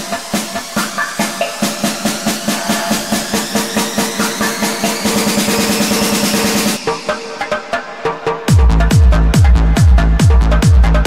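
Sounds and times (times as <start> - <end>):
rising noise sweep: 0.0 - 7.3.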